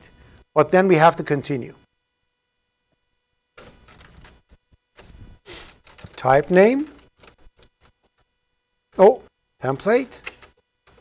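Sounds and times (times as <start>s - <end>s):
computer keyboard keystrokes: 3.6s - 4.4s, 5.0s - 7.7s, 10.2s - 11.0s.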